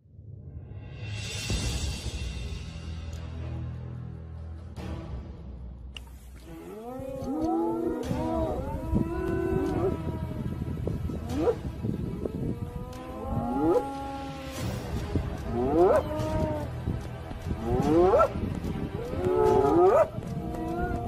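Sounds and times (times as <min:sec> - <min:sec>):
steady low rumble: 0:06.1 - 0:21.0
herd of animals mooing: 0:06.5 - 0:14.6, 0:15.2 - 0:16.7, 0:17.5 - 0:18.4, 0:19.0 - 0:21.0.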